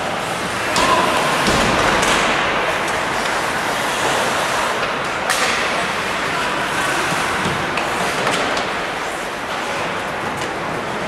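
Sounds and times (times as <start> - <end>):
skates hissing on ice: 3.2 - 4.9.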